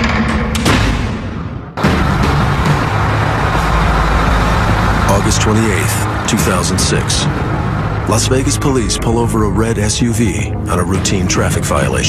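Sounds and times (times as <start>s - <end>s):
car road and engine noise: 1.5s - 12.0s.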